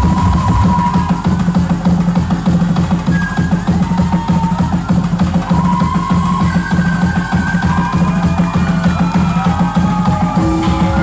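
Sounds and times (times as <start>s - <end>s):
loud music with drum beat: 0.0s - 11.0s.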